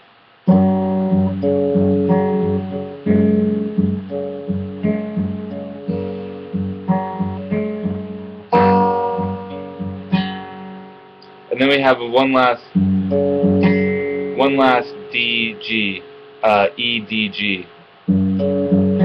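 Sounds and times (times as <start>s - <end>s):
fingerpicked acoustic guitar: 0.4s - 11.5s, 12.7s - 19.0s.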